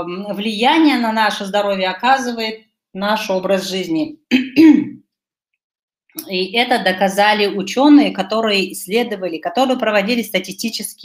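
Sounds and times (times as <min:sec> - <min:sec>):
woman clearing her throat: 0:04.3 - 0:05.0.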